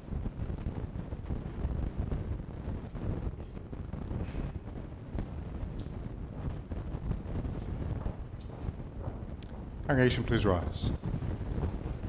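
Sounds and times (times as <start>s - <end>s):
low uneven rumbling on microphone: 0.0s - 12.0s.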